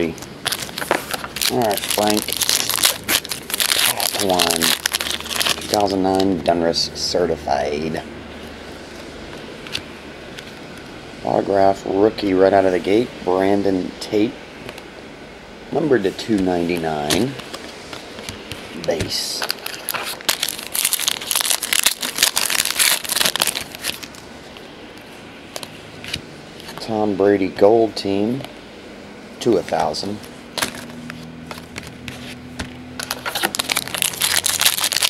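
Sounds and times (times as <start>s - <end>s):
card pack wrapper crinkling: 0.1s - 6.4s, 18.3s - 24.2s, 33.0s - 35.0s
trading cards shuffled by hand: 30.6s - 35.0s.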